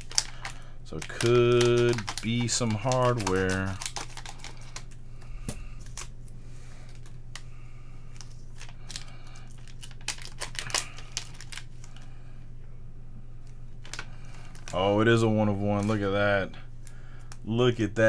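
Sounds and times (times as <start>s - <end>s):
plastic wrapping crinkling: 0.0s - 6.1s, 8.1s - 12.1s, 13.8s - 15.0s
steady low hum: 0.0s - 18.0s.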